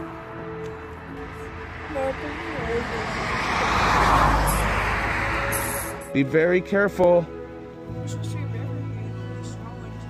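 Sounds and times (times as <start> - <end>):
vehicle passing by: 0.1 - 6.4.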